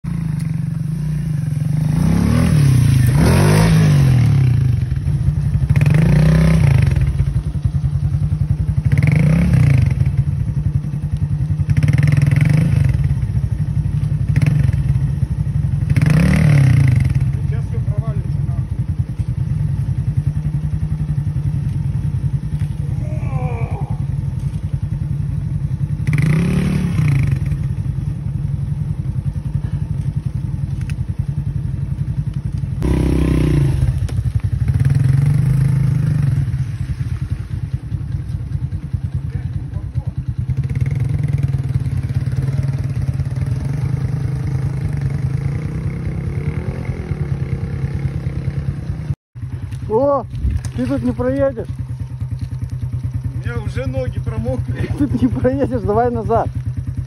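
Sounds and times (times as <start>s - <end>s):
moped engine revving: 0.1s - 57.0s.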